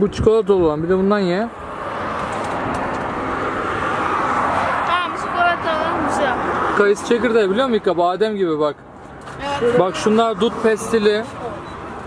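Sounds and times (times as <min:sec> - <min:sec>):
tyres rushing on asphalt: 0:00.0 - 0:12.0.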